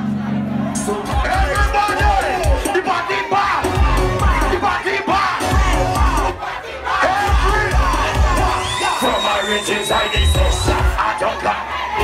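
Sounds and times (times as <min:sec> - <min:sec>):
crowd shouting and chanting: 0:00.0 - 0:12.0
heavy repeating bass beat: 0:00.6 - 0:06.4, 0:07.0 - 0:11.4
amplified voice of performer: 0:00.7 - 0:12.0.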